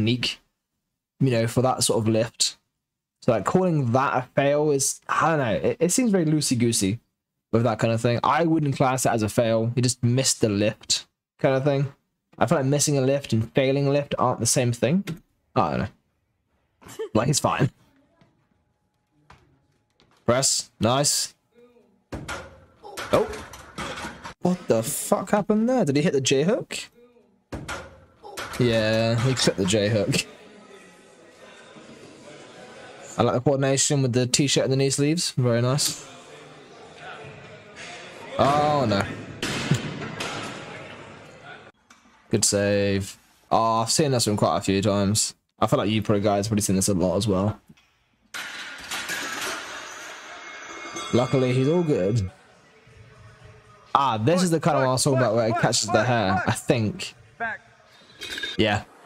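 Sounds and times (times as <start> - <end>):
metal frame and plates clattering: 22.2 - 24.4, 48.3 - 52.2
barbell plates crashing: 48.3 - 51.2.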